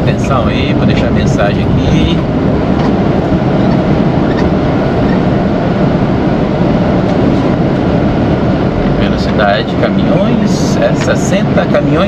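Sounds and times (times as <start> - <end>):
truck diesel engine rumble: 0.0 - 12.0.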